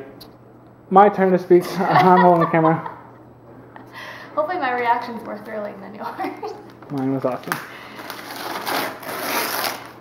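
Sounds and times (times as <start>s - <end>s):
wrapping paper tearing: 6.9s - 10.0s.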